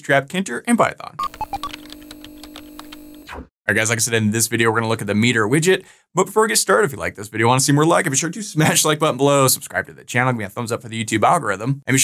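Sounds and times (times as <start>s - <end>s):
quick computer beeps: 1.2s - 2.5s
keystroke clicks: 1.2s - 3.2s.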